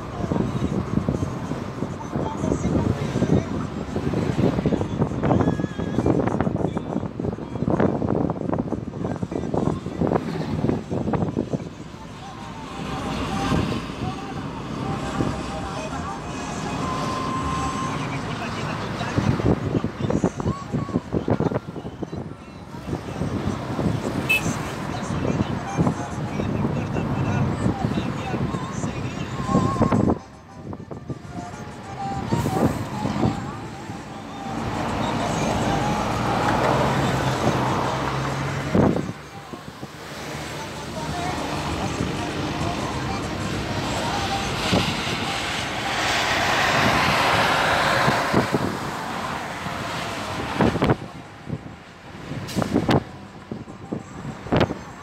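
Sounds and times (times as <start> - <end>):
road and engine noise in car: 0.0 - 55.0
voices: 9.0 - 55.0
music: 28.4 - 36.3.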